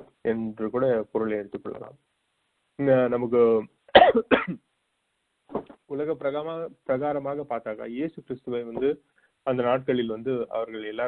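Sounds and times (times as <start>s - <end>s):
man coughing over telephone: 3.9s - 4.6s.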